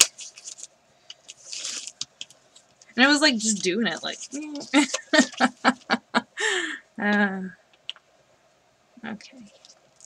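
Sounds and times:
paper rustling and scraping: 0:00.0 - 0:02.7, 0:03.4 - 0:05.5.

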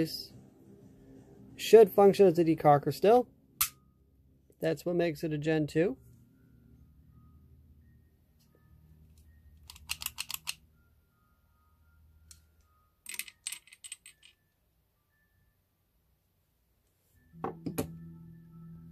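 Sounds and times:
pistol hammer and lever clicks: 0:09.6 - 0:10.6.

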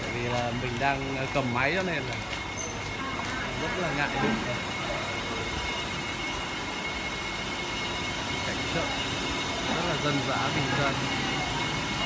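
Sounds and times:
man talking: 0:00.0 - 0:02.3, 0:09.7 - 0:11.0
high machine whine: 0:00.0 - 0:12.0
market din: 0:00.0 - 0:12.0.

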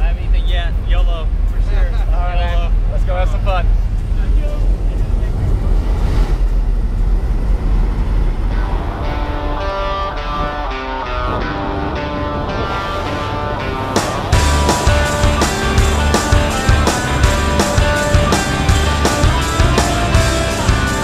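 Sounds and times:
aircraft engine roar: 0:00.0 - 0:21.0
wind roar: 0:00.0 - 0:21.0
background music: 0:08.5 - 0:21.0.

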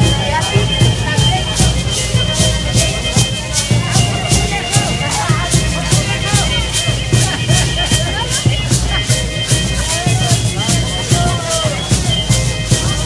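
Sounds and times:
crowd voices: 0:00.0 - 0:13.0
shaken rattles beat: 0:00.0 - 0:13.0.

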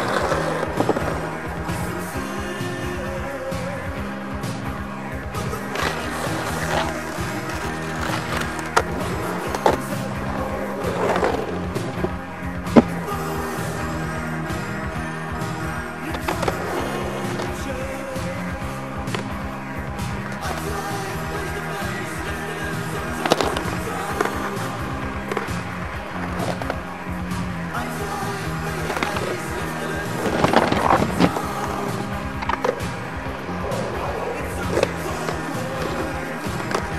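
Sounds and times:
background music: 0:00.0 - 0:36.9
skateboard clacks: 0:00.0 - 0:36.9
skateboard wheels rolling on asphalt: 0:00.0 - 0:36.9.

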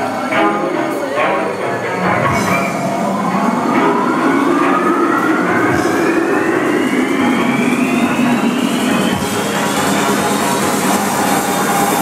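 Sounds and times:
sustained low drone: 0:00.0 - 0:12.0
synth tone sweeping upward: 0:00.0 - 0:12.0.

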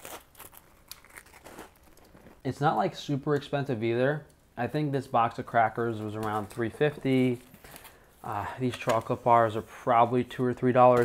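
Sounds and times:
crunchy biting and chewing: 0:00.0 - 0:02.4.

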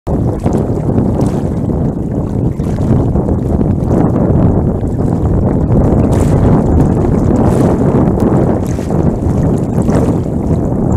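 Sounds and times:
water sloshing: 0:00.1 - 0:10.9
wind buffeting microphone: 0:00.1 - 0:10.9.

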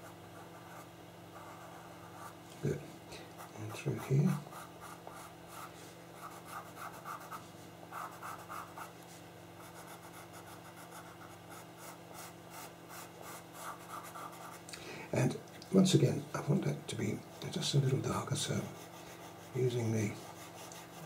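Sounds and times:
pencil scratching on paper: 0:00.0 - 0:02.4, 0:03.4 - 0:09.0, 0:09.6 - 0:14.6, 0:17.3 - 0:21.0.

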